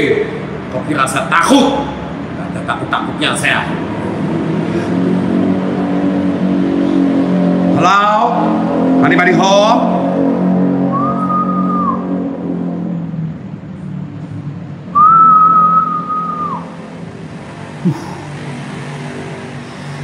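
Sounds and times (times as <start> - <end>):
low droning hum: 8.5 - 20.0
person whistling long notes: 10.9 - 12.1, 14.9 - 16.7.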